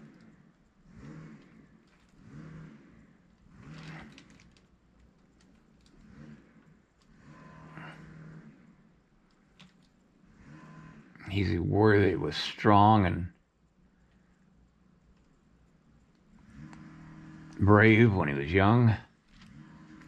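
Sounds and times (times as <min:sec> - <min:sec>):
man's faint wordless voice: 0:17.6 - 0:19.1.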